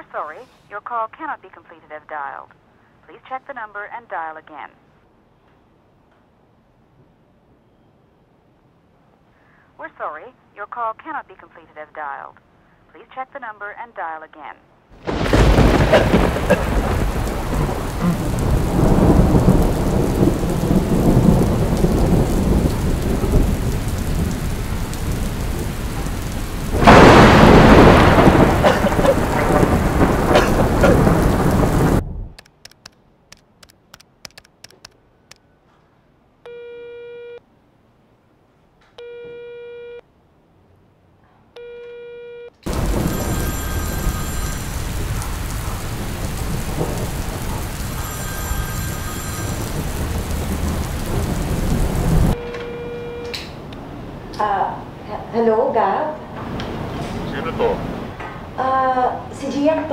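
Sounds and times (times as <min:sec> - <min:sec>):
steady rain: 0:14.9 - 0:35.4, 0:42.6 - 0:59.9
thunder: 0:15.0 - 0:32.4, 0:42.7 - 0:52.7
short telephone tones: 0:36.5 - 0:37.4, 0:39.0 - 0:40.0, 0:52.4 - 0:53.5.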